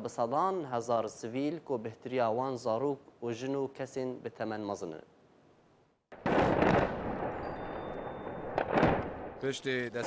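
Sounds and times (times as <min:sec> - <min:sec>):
explosion rumbling: 0:06.2 - 0:09.4
sharp gunfire bangs: 0:06.2 - 0:09.4.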